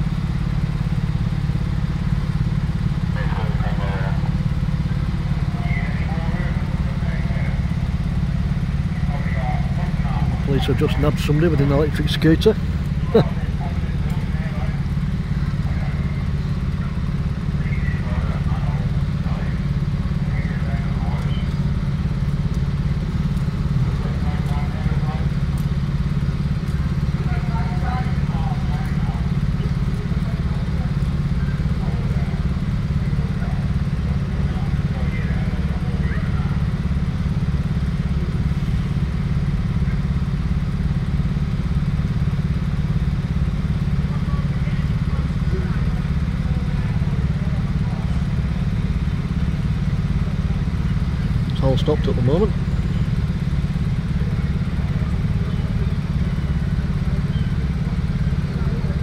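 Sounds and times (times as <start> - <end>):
diesel engine running: 0.0 - 59.0
faint voices: 2.2 - 40.4, 42.4 - 59.0.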